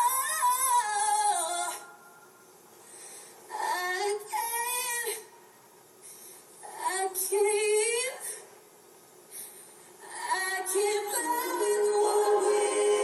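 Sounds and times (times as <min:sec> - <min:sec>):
woman singing: 0:10.1 - 0:13.0
backing music: 0:11.1 - 0:13.0.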